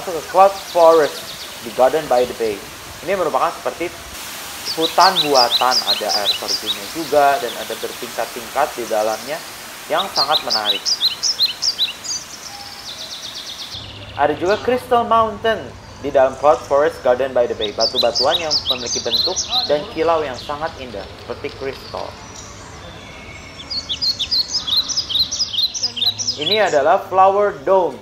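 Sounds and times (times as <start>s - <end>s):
steady hiss: 0.0s - 22.7s
small bird chirping and trilling: 0.2s - 2.6s, 4.6s - 14.8s, 17.6s - 26.9s.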